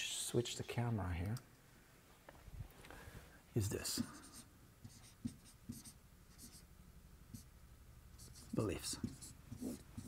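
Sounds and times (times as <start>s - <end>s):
marker writing on whiteboard: 3.7s - 6.7s, 7.3s - 7.5s, 8.2s - 10.0s.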